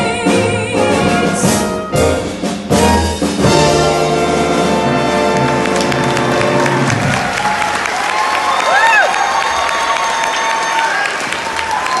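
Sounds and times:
jazz band brass chord: 0.0s - 7.1s
audience applauding and cheering: 4.5s - 12.0s
rising and falling whoop: 7.1s - 12.0s.

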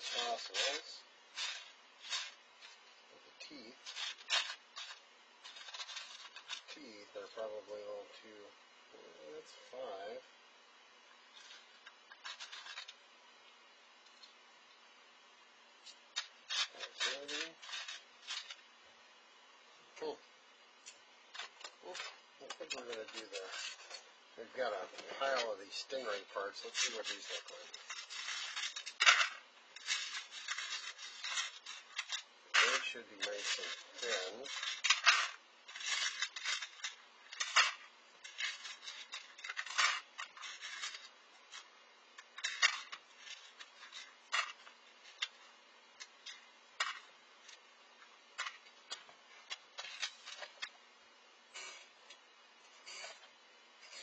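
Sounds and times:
man talking: 0.0s - 1.1s, 3.1s - 3.8s, 6.7s - 10.3s, 16.8s - 17.6s, 20.0s - 20.3s, 21.8s - 23.6s, 24.4s - 27.8s, 32.5s - 34.5s
small pieces clattering on plastic tray: 1.4s - 2.4s, 11.4s - 13.0s, 26.6s - 41.6s.

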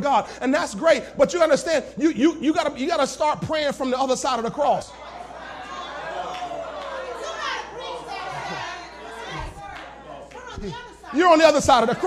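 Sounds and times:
preacher speaking: 0.0s - 5.0s, 7.1s - 12.0s
congregation calling out: 0.0s - 12.0s.

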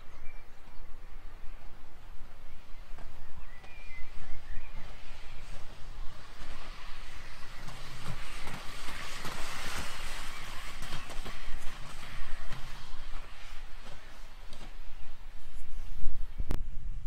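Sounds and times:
skate wheels hissing on asphalt: 0.0s - 17.0s
wind rumble on microphone: 0.0s - 17.0s.

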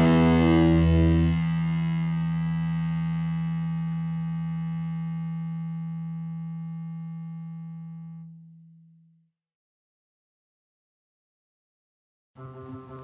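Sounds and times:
distorted electric guitar chord: 0.0s - 8.5s, 12.4s - 13.0s.

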